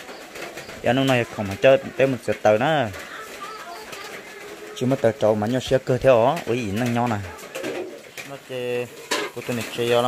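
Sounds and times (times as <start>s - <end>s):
person talking: 0.8s - 10.0s.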